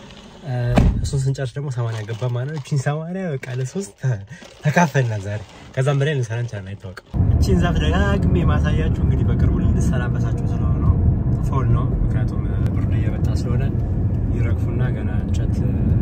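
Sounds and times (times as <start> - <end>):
car engine and road noise: 0.0 - 2.4, 5.5 - 16.0.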